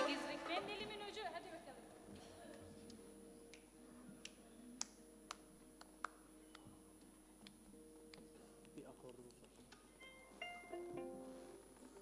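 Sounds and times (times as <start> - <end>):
faint low plucked notes: 7.8 - 12.0.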